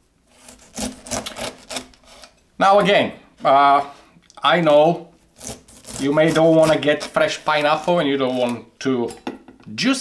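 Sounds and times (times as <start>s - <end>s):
knife cutting on wooden board: 0.3s - 2.4s, 5.4s - 7.2s.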